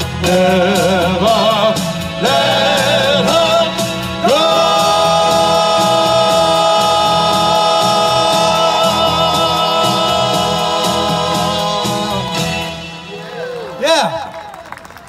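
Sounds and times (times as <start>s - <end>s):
male vocal quartet singing: 0.0s - 13.5s.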